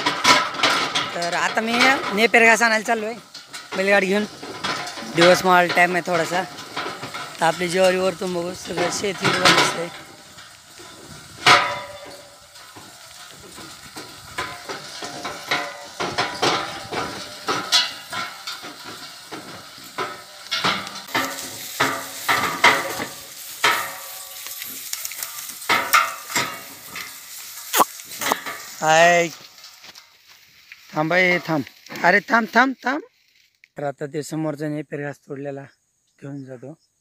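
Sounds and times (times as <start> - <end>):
wooden cart clattering and creaking: 0.0 - 33.0.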